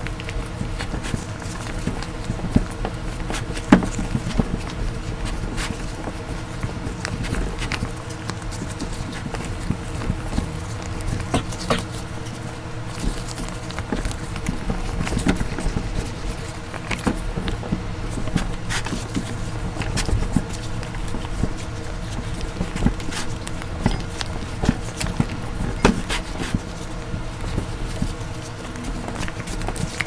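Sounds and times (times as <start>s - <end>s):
plastic bag handling noise: 0.0s - 30.0s.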